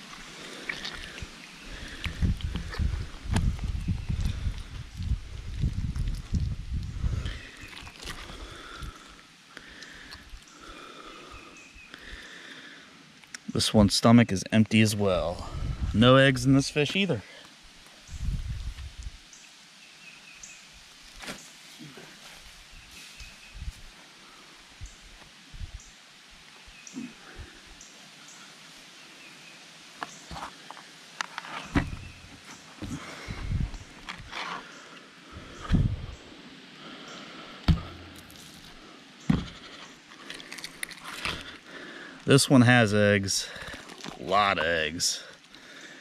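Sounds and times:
wind buffeting microphone: 1.2 - 7.4, 15.4 - 16.0, 18.1 - 19.2, 31.8 - 34.3, 35.4 - 36.3.

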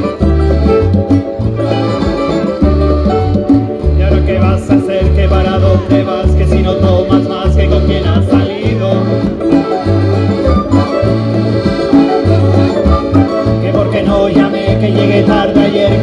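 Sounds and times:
accordion: 0.0 - 16.0
conga drums: 0.0 - 16.0
strummed guitars: 0.0 - 16.0
walking bass line: 0.0 - 16.0.

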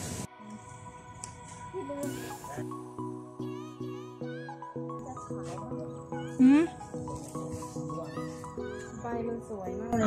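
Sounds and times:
background music of repeated notes: 1.2 - 10.0.

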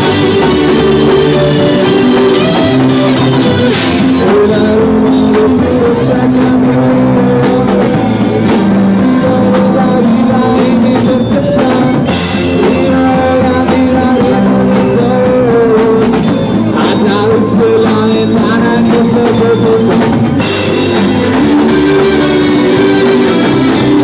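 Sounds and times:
rock band playing: 0.0 - 24.0.

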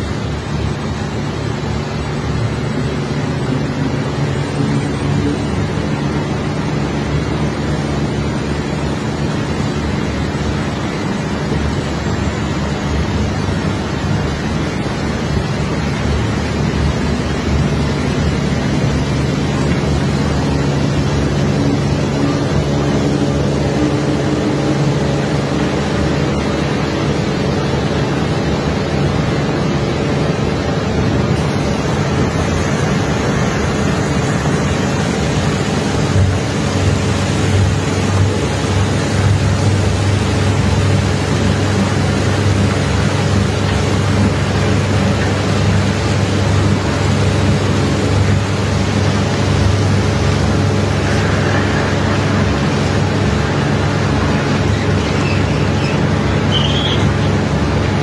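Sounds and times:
constant rushing noise: 0.0 - 58.0
heavy engine running: 0.0 - 58.0.

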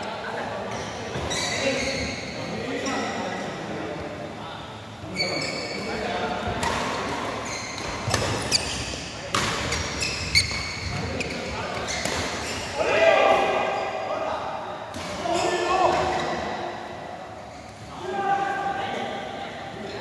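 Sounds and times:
players' voices: 0.0 - 20.0
shoes squeaking on court: 0.7 - 2.5, 7.4 - 12.8.

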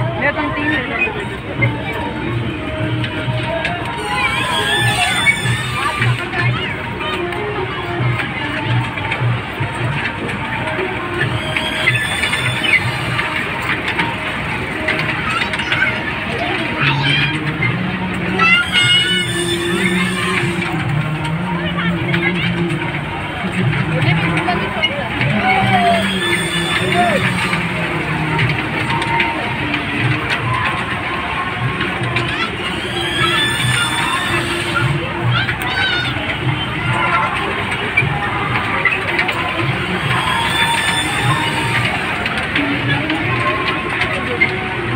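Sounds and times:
faint crowd chatter: 0.0 - 44.9
fairground music: 0.0 - 44.9
kiddie train rolling on track: 0.0 - 44.9
squeaky high tones: 3.9 - 7.2, 11.2 - 14.3, 18.3 - 20.9, 25.3 - 29.4, 32.1 - 37.4, 38.7 - 42.2.

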